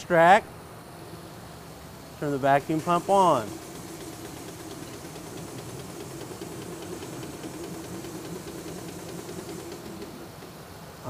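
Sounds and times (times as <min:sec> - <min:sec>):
vacuum pump humming and hissing: 0:00.0 - 0:11.0.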